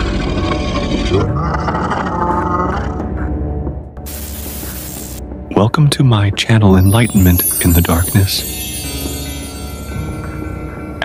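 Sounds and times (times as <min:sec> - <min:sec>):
loud hiss: 0:04.1 - 0:05.2.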